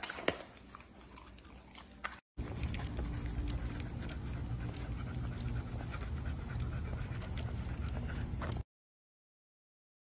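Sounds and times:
dog panting: 1.1 - 8.7
steady low rumble: 2.4 - 8.6.

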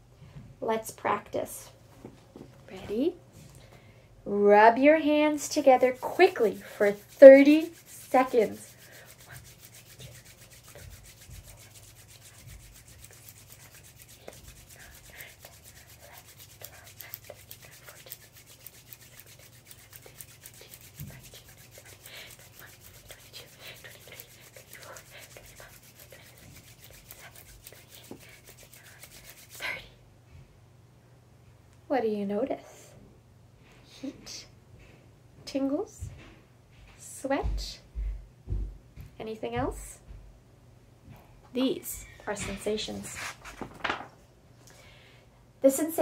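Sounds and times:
hands rubbing together: 5.2 - 29.7.

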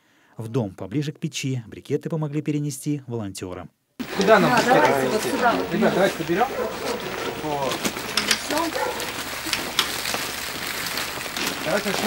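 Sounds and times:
plastic packaging rustling: 4.0 - 12.0.

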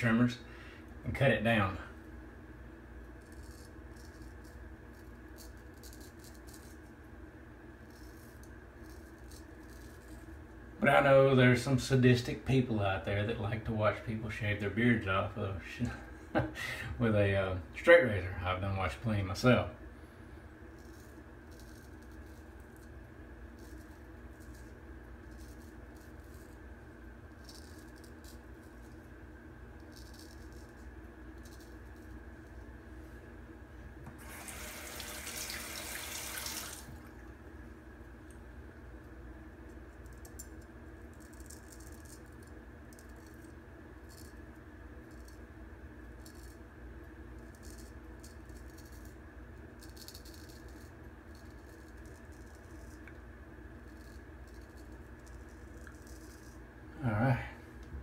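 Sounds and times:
steady low hum: 0.0 - 58.0
tap running: 34.0 - 37.1.

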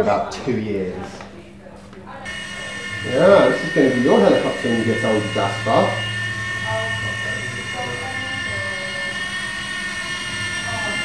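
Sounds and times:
rc helicopter motor whine: 2.3 - 11.0.

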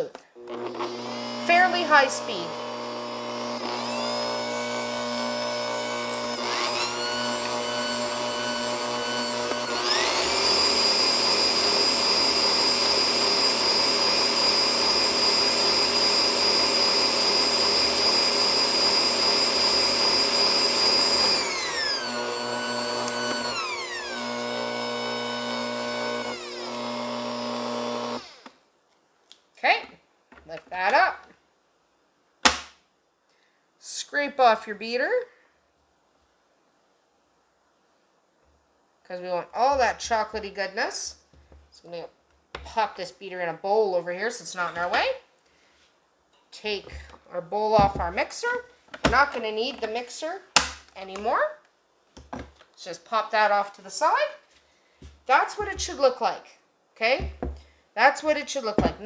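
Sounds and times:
kitchen mixer motor whining: 0.4 - 28.5.

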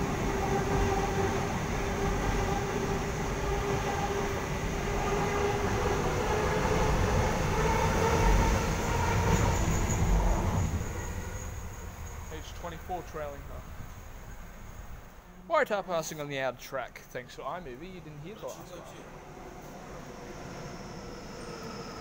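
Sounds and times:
electric train passing: 0.0 - 15.3, 17.4 - 22.0.

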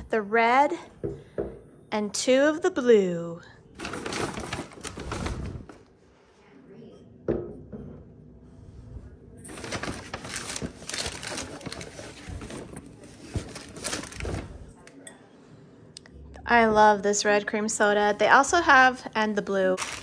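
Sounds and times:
paper sack rustling: 3.8 - 5.8, 9.5 - 14.6.

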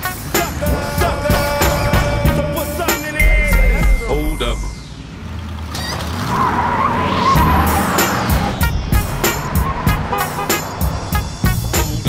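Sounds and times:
music with a steady beat: 0.0 - 4.3, 7.4 - 12.0
car tyres squealing: 0.2 - 3.1, 4.4 - 12.0.

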